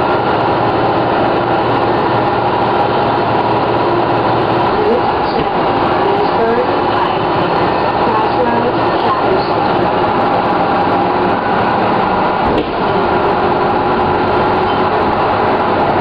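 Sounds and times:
diesel bus engine running: 0.0s - 16.0s.

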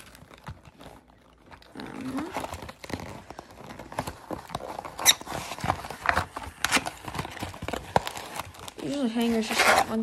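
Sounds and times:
cardboard box rustling and scraping: 0.0s - 10.0s.

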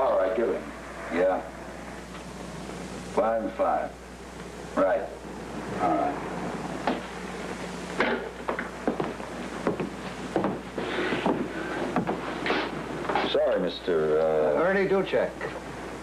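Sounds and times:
low mains hum: 0.0s - 16.0s
soundtrack hiss: 0.0s - 16.0s
objects knocking on a desk: 11.2s - 12.2s.

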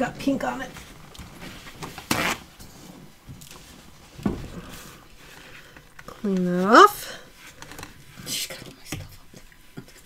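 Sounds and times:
paper towel rustling: 0.2s - 8.6s.

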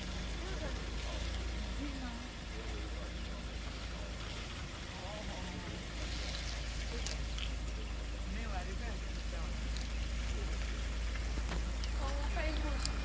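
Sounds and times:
faint murmuring voices: 0.0s - 13.0s
steady low engine rumble: 0.0s - 13.0s.

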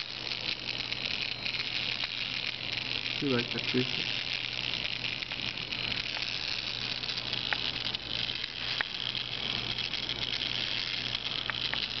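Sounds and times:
electric gearmotor whirring: 0.0s - 12.0s.

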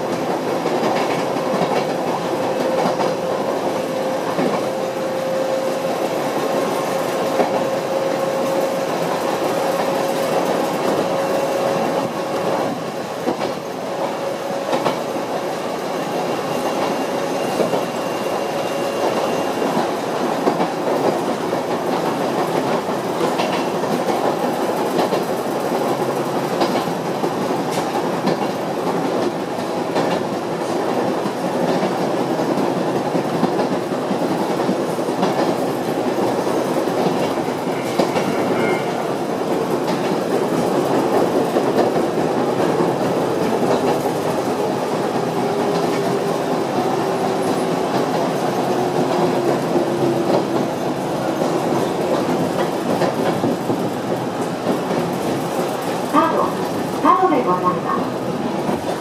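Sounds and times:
train wheels rumbling on rails: 0.0s - 59.0s.

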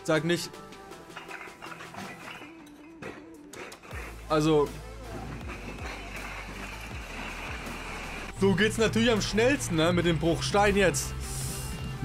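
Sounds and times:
bricks clattering off a truck: 1.1s - 4.0s.

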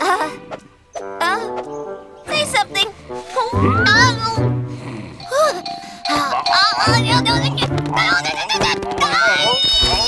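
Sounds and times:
background music: 0.0s - 10.0s
cartoon owl honking: 6.1s - 9.8s.

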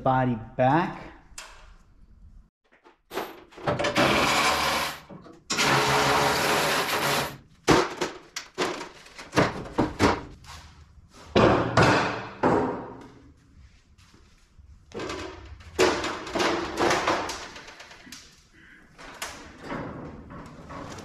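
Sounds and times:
power tool running: 4.0s - 5.0s
metal knocks and clanks: 11.3s - 13.2s, 14.9s - 18.0s, 19.0s - 21.0s.

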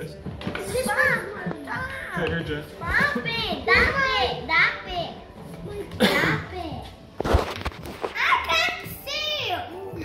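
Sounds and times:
child's high voice: 8.2s - 10.0s.

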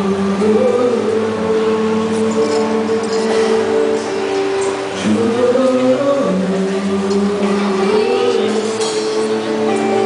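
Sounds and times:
acoustic guitar: 0.0s - 10.0s
men singing: 0.0s - 10.0s.

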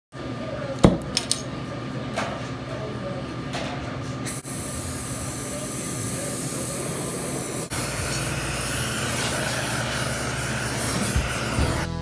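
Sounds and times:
gas torch metallic clank: 7.7s - 11.9s.

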